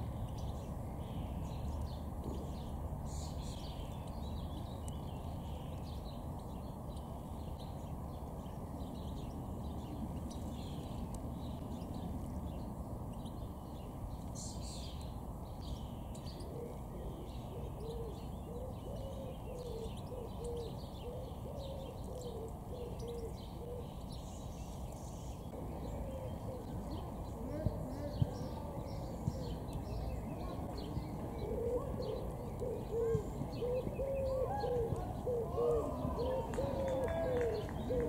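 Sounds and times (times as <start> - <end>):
songbird chirps and trills: 0.0 - 38.0
bird hooting: 31.4 - 38.0.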